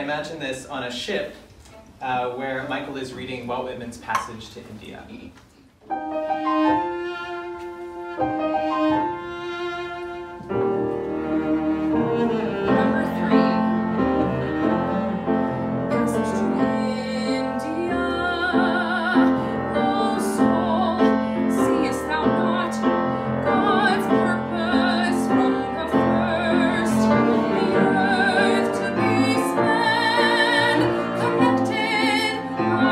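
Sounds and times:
grand piano: 5.8s - 32.9s
cello: 5.9s - 32.9s
person singing with vibrato: 12.5s - 32.9s.

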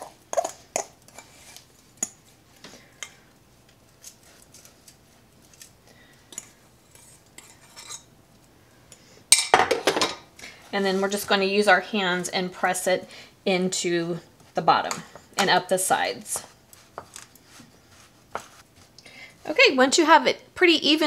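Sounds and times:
metal spoon scraping glass bowl: 6.4s - 8.1s.

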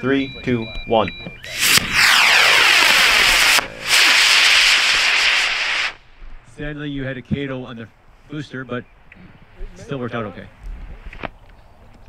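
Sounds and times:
rocket motor rushing hiss: 1.5s - 6.1s.

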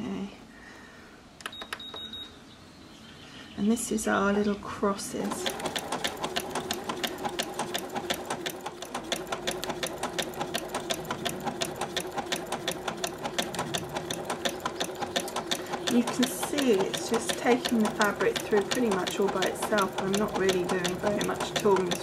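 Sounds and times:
sewing machine motor hum: 5.1s - 22.0s
sewing machine needle rattle: 5.2s - 22.0s.

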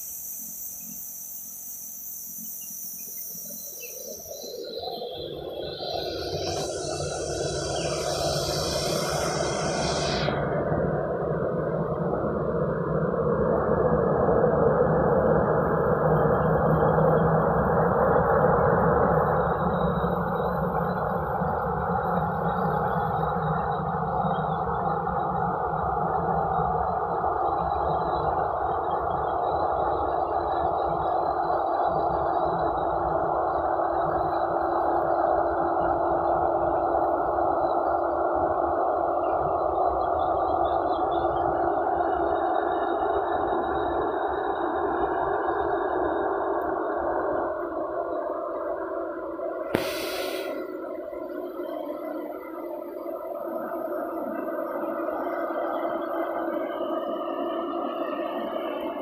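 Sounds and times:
jet engines rushing: 5.3s - 12.4s, 44.0s - 51.7s.

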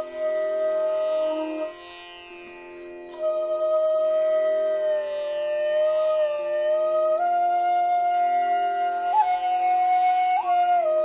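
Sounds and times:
bamboo flute long note: 0.0s - 1.8s, 3.1s - 11.0s.

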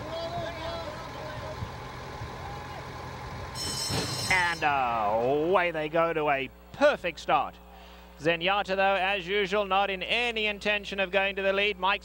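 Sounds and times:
starting gate bell ringing: 3.5s - 4.8s
gate doors banging open: 3.6s - 4.6s.

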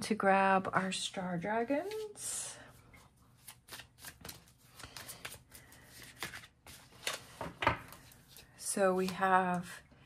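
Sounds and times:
cards being shuffled: 3.2s - 9.3s.

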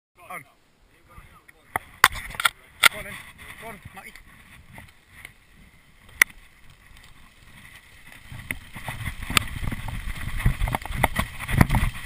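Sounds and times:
people talking: 0.2s - 4.2s
sharp clicks of handled gear: 1.7s - 3.1s, 6.0s - 12.0s.

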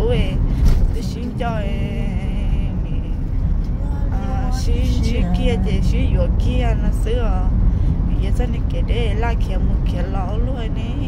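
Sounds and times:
car engine and road rumble: 0.0s - 11.0s.

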